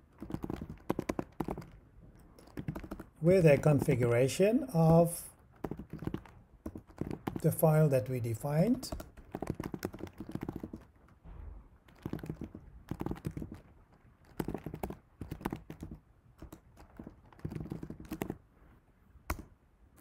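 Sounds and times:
typing on computer keyboard: 0.0s - 7.6s, 8.5s - 11.0s, 11.9s - 18.4s, 19.3s - 19.5s.

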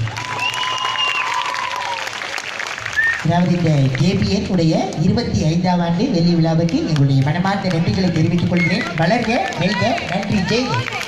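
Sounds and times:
audience applauding: 0.0s - 4.3s, 6.7s - 11.0s.

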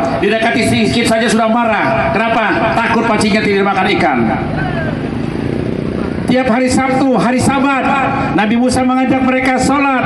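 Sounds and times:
man's amplified voice: 0.0s - 5.1s, 6.2s - 10.0s
vehicle engine running: 0.0s - 10.0s.

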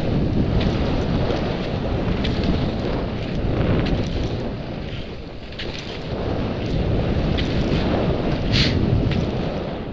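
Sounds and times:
wind rumbling on microphone: 0.0s - 9.9s.

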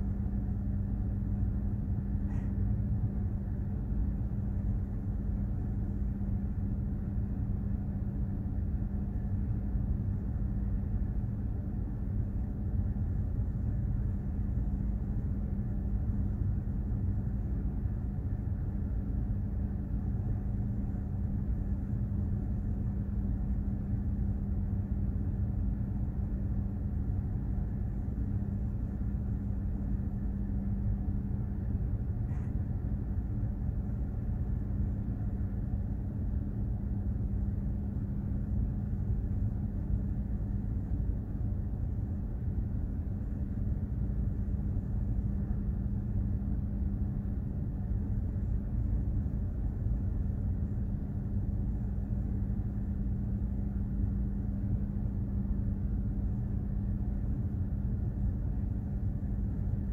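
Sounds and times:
ship engine rumble and hum: 0.0s - 59.9s.

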